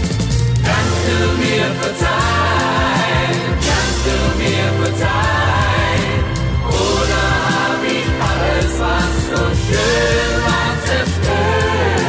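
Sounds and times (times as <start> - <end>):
pop ballad with full band: 0.0 - 12.0
choir-like vocal harmonies: 0.6 - 12.0.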